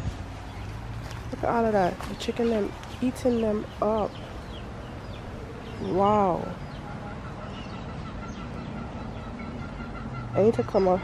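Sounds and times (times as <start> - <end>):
outdoor background noise: 0.0 - 11.0
chickens clucking: 1.4 - 11.0.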